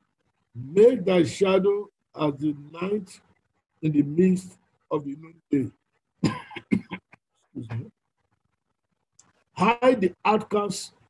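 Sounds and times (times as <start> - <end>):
man coughing: 6.2 - 7.0.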